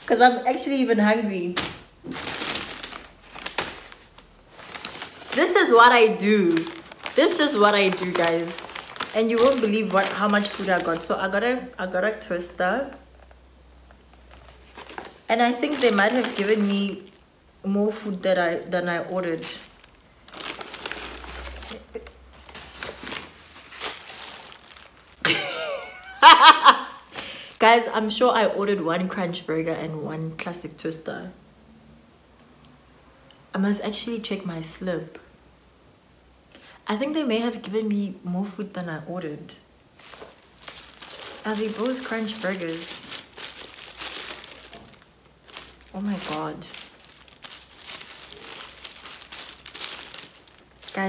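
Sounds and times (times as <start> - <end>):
paper wrappers rustling: 1.5 - 11.4, 14.0 - 17.2, 17.9 - 27.9, 39.9 - 51.0.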